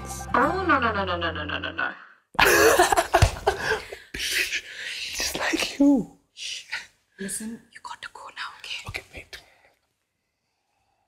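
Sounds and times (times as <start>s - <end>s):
people whispering: 4.1s - 9.8s.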